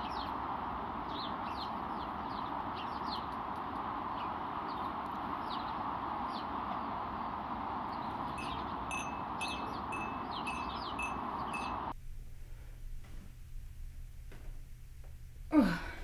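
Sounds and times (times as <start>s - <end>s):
birds chirping: 0.0s - 12.0s
steady hiss: 0.0s - 16.0s
bright ringing chime tone: 8.4s - 12.0s.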